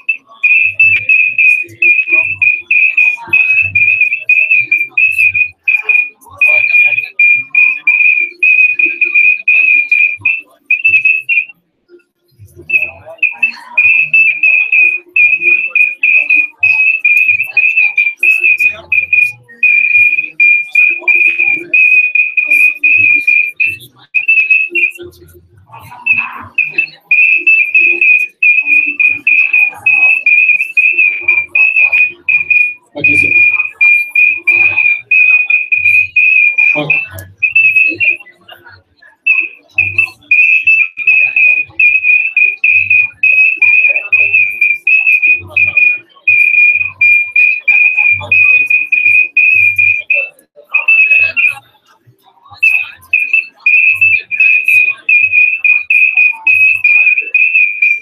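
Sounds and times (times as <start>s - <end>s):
faint voices: 0.0s - 58.0s.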